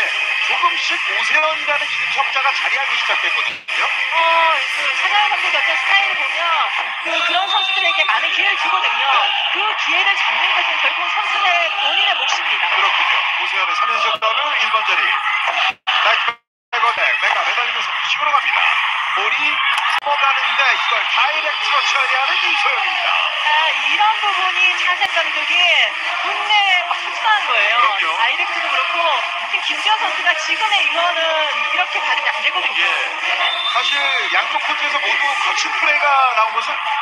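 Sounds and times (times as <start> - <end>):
arena crowd voices: 0.0 - 37.0.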